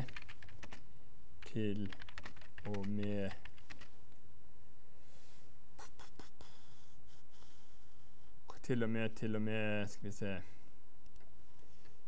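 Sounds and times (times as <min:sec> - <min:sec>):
laptop keyboard keystrokes: 0:00.0 - 0:00.8, 0:01.8 - 0:03.9
low room hum: 0:00.0 - 0:12.0.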